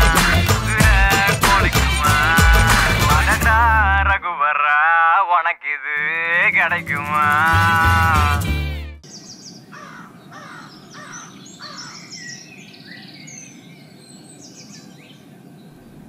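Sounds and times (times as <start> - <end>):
music with deep bass: 0.0 - 4.1, 6.7 - 9.0
high bird chirps: 9.0 - 15.9
birds calling: 9.0 - 16.0.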